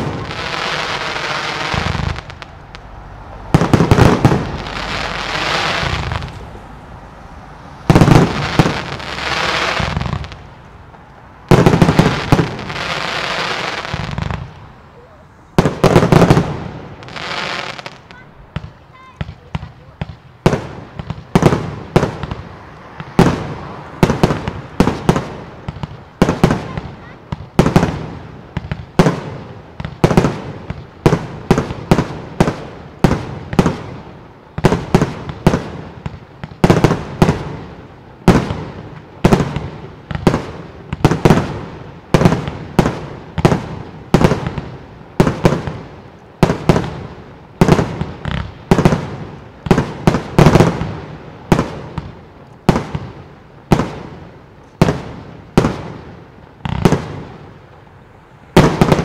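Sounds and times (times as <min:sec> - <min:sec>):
fireworks bangs: 0:00.0 - 0:59.0.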